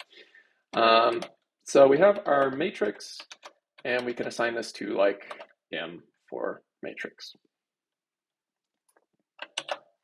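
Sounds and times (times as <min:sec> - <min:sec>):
keyboard and mouse clicks: 0:00.0 - 0:04.5, 0:05.2 - 0:05.6, 0:08.8 - 0:10.0.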